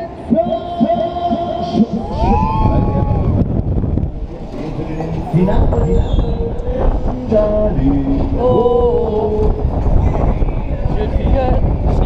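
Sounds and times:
wind rushing over microphone: 1.3 - 12.0.

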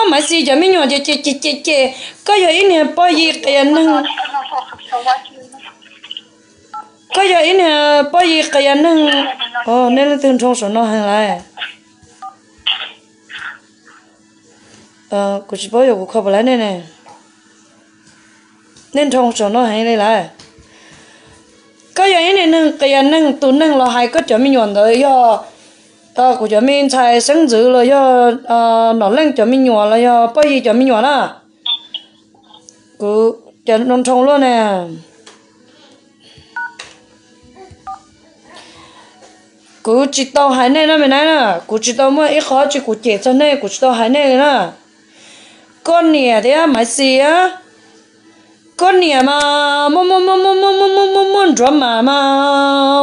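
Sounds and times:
faint phone line hum: 0.0 - 20.0, 30.9 - 40.2
person speaking: 3.1 - 6.3, 8.2 - 10.2, 12.7 - 14.0
phone line hum: 3.2 - 10.4, 11.5 - 14.6, 31.5 - 32.9, 36.5 - 36.8, 37.8 - 38.1.

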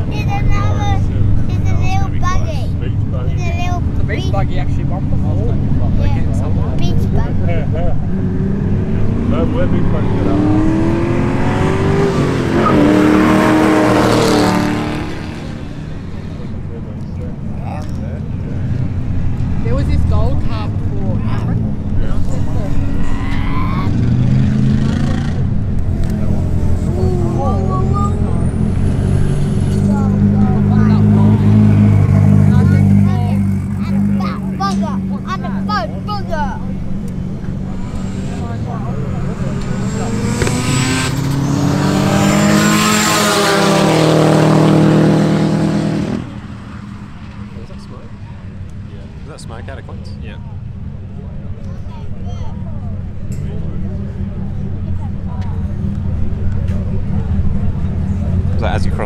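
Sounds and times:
race car engines revving: 0.0 - 59.0.

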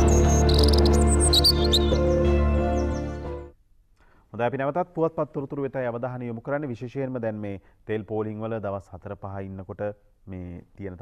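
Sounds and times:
birdsong chirps: 0.0 - 3.4.

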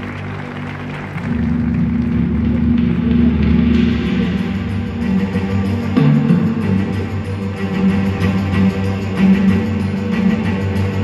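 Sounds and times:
dramatic introduction music: 0.0 - 11.0.

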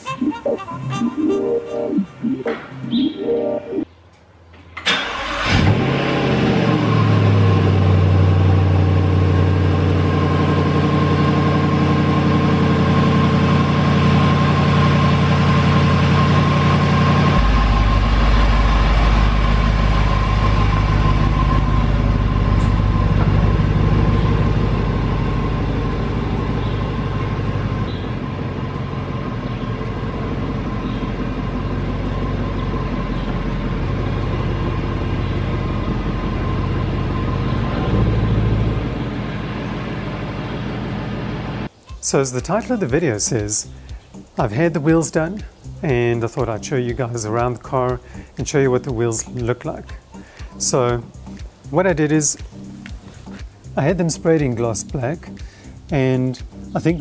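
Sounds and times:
car driving away: 4.8 - 41.7
car engine starting and idling: 4.8 - 41.8.

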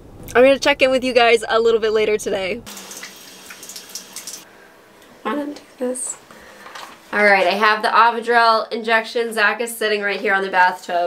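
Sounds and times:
tap water running into basin: 2.7 - 4.5.

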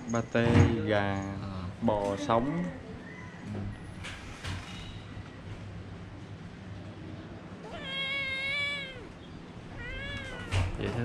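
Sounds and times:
cat meowing: 7.6 - 11.0.

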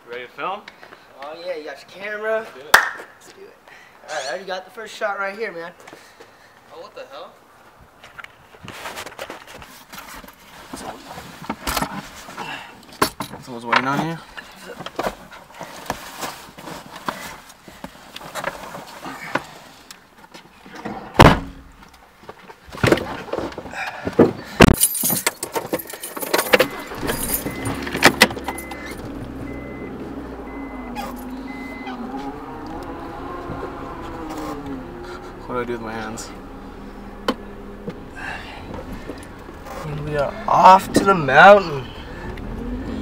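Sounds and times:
rustling and knocking of bags: 21.2 - 29.5
car engine humming: 24.8 - 43.0
car doors shutting: 25.4 - 43.0
warning chime beeping: 26.4 - 33.1.

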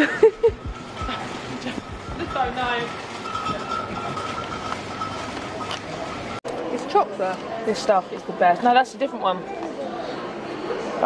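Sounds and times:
shopping trolley rattling over paving: 0.7 - 6.4.

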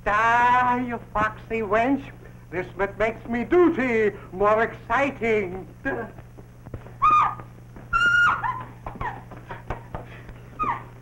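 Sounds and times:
woman yelping: 7.0 - 9.2, 10.6 - 10.9.

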